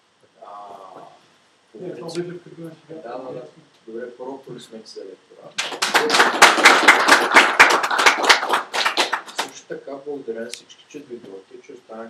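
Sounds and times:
audience applauding: 5.6s - 9.6s.

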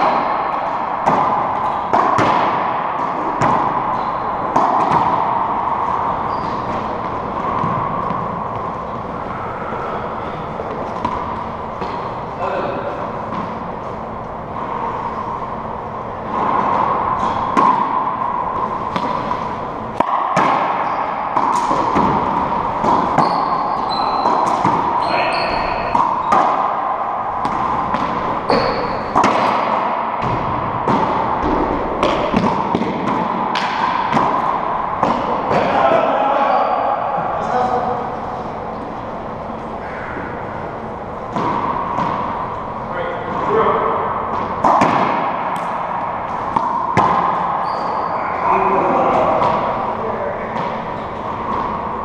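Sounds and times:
rubber ball smacking and echoing: 0.0s - 12.2s, 16.1s - 36.1s, 40.6s - 48.2s
sneaker squeaks on hardwood: 6.2s - 7.0s, 23.1s - 26.4s, 28.5s - 29.2s, 47.6s - 48.4s.

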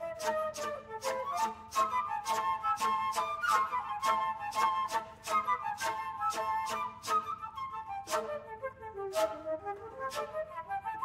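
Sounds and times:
flute quartet playing: 0.0s - 11.0s.

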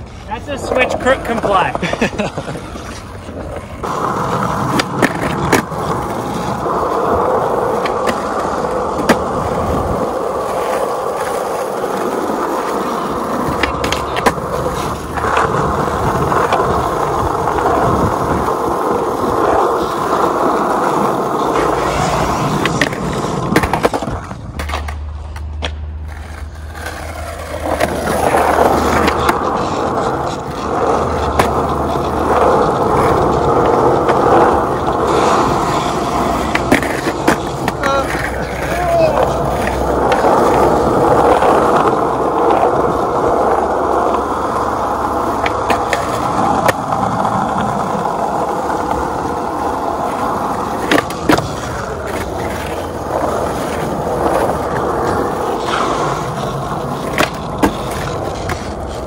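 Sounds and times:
skateboard clacks: 0.0s - 59.0s
skateboard wheels rolling on asphalt: 0.0s - 59.0s.

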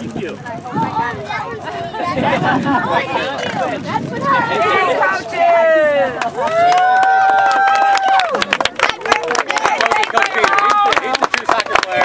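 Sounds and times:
sharp claps: 6.2s - 12.0s.

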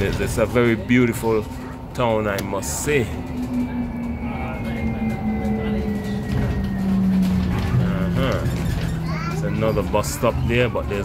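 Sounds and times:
bus drivetrain hum: 0.0s - 11.0s
road rumble: 0.0s - 11.0s.

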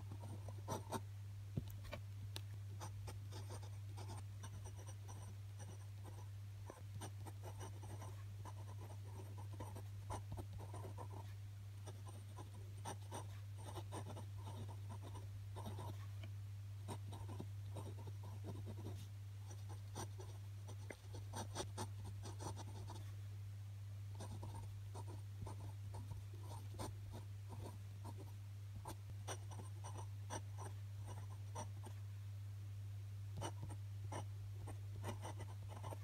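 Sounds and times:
glass pen scratching on paper: 3.3s - 11.3s, 11.9s - 16.1s, 35.0s - 36.0s.

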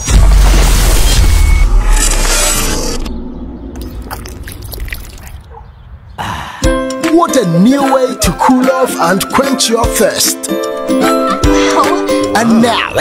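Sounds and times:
deep boom: 0.0s - 5.4s.

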